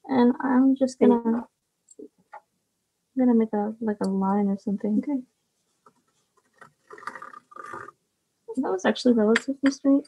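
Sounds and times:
tracing wheel rolling on paper: 0:05.9 - 0:08.0.

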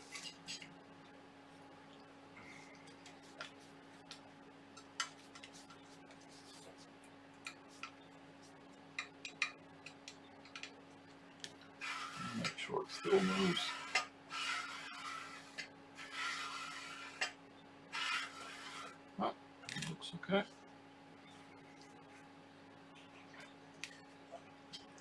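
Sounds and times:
faint steady hum: 0:00.0 - 0:25.0.

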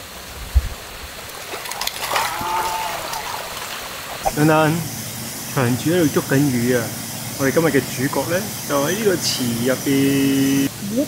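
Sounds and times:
water pouring from pipes: 0:01.1 - 0:10.7
fish thrashing and splashing: 0:01.3 - 0:04.4.

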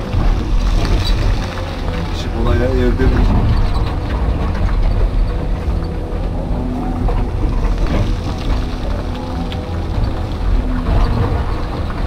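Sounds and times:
bucket working soil and rock: 0:00.0 - 0:12.0
excavator diesel engine running: 0:00.0 - 0:12.0.

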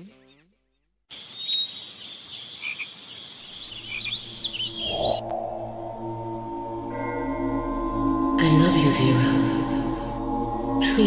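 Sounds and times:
chirping calls: 0:01.1 - 0:08.2
frogs and insects trilling: 0:01.1 - 0:11.0
low drone: 0:04.1 - 0:11.0.

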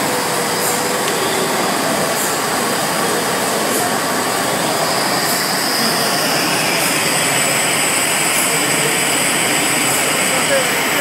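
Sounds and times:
machine blowing air: 0:00.0 - 0:11.0
thin high whines: 0:00.0 - 0:11.0.

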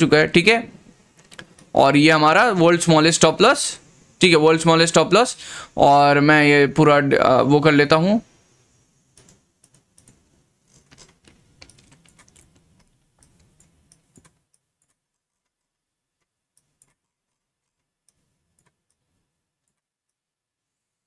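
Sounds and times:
keyboard and mouse clicking: 0:09.2 - 0:15.6, 0:16.5 - 0:17.0.

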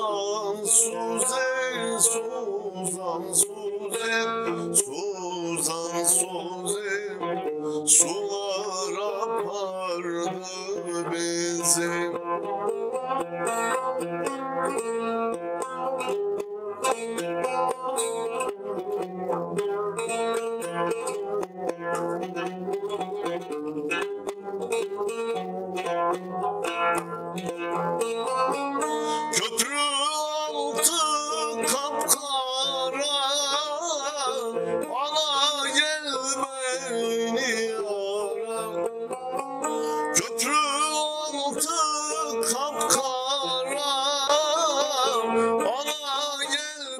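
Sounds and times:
man singing with vibrato: 0:00.0 - 0:12.2, 0:28.8 - 0:46.9
plucked saz: 0:00.0 - 0:46.9.

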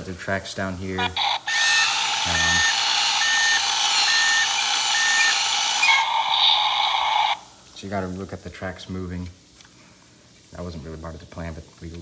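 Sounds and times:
tinny toy engine sound effect: 0:01.0 - 0:07.5
toy motor driving tracks: 0:01.0 - 0:07.5
short electronic beeps: 0:02.6 - 0:06.0.

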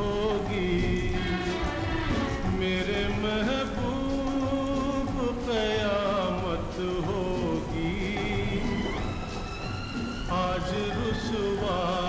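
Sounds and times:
rain: 0:00.0 - 0:12.0
slow lofi music: 0:00.0 - 0:12.0.

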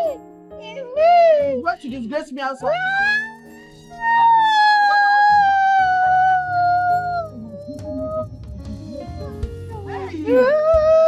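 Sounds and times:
soft background music: 0:00.0 - 0:11.0
woman wailing: 0:04.1 - 0:08.2, 0:10.0 - 0:11.0.

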